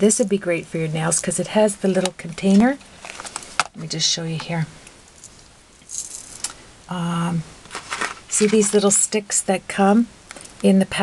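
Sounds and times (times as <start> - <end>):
rhinestones rattling in container: 5.2 - 6.6, 7.7 - 8.9.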